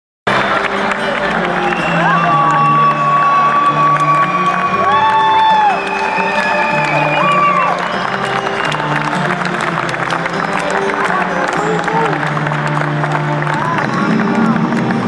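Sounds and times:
crowd cheering and applause: 0.3 - 15.0
steady bass notes: 11.0 - 15.0.

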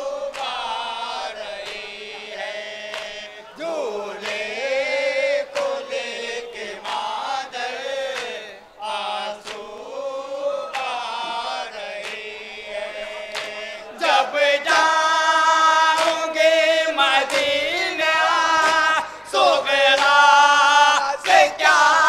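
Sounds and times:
men chanting a lament: 0.0 - 22.0.

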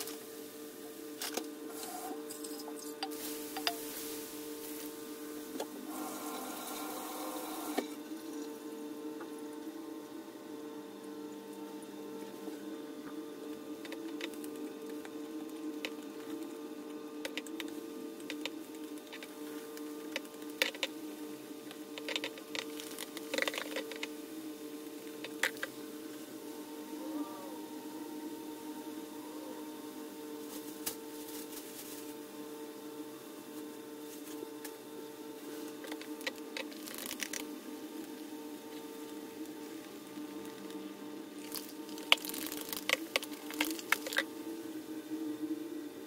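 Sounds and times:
mixture fizzing: 0.0 - 8.7, 35.8 - 44.5
steady low hum: 0.0 - 46.0
bubbles popping and crackling: 41.4 - 44.3.

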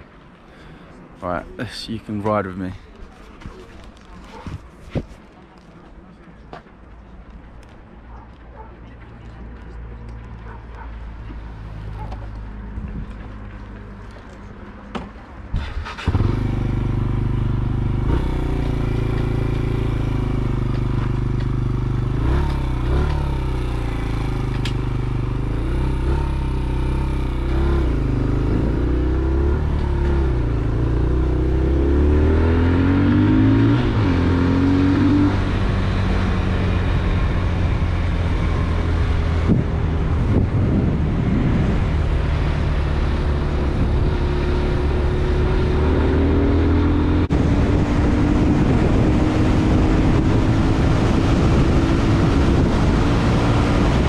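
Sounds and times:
motorcycle engine accelerating: 15.6 - 54.0.

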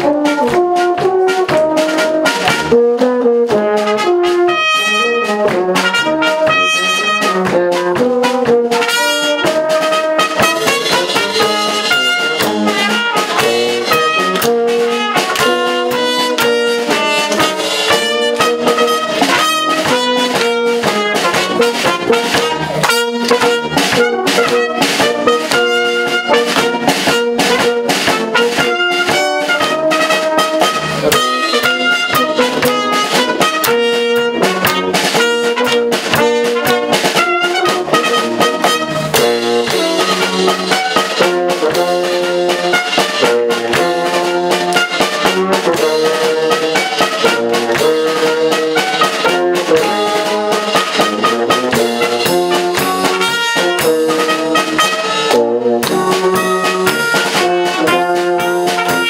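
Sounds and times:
brass band playing: 0.0 - 59.0
drum kit beat: 0.0 - 59.0.

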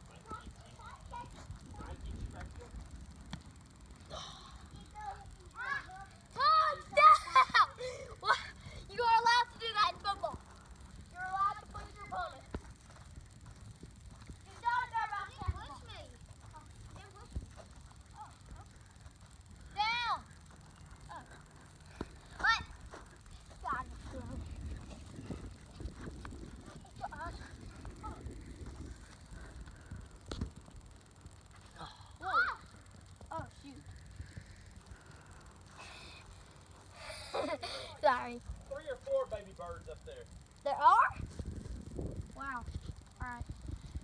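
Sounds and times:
children calling and shouting: 4.1 - 10.5.

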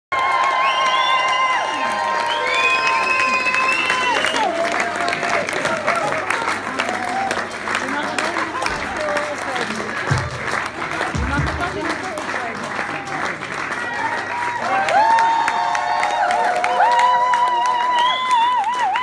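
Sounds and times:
audience applauding: 0.1 - 19.0.

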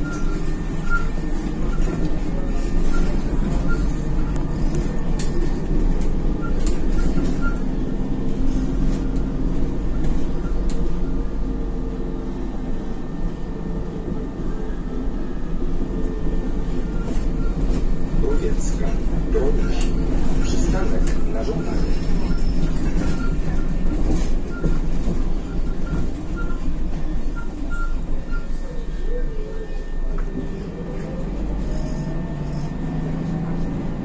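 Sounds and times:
bus engine and road rumble: 0.0 - 34.0.

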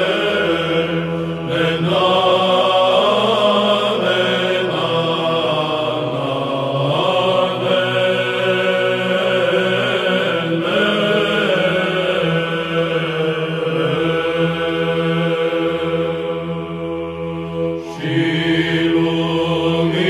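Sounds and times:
held low vocal drone: 0.0 - 20.0
male choir chanting melismatic line: 0.0 - 20.0.

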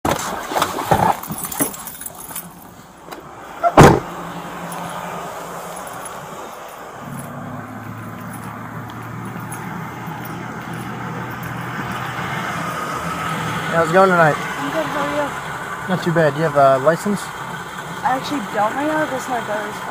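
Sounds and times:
truck engine idling: 1.9 - 19.9
steady outdoor hiss: 2.0 - 19.9
car door shutting: 3.0 - 4.2.

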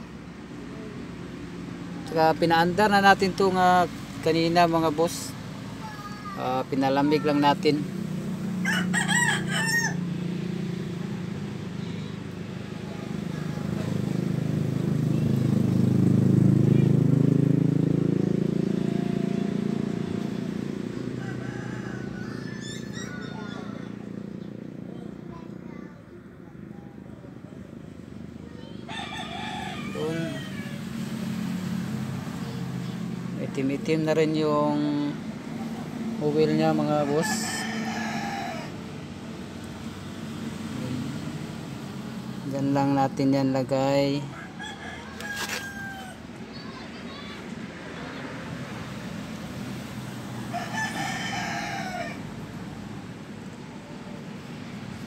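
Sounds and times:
rooster crowing: 8.5 - 10.2, 21.0 - 24.2, 28.6 - 31.2, 36.4 - 39.0, 44.2 - 46.3, 50.0 - 52.8.

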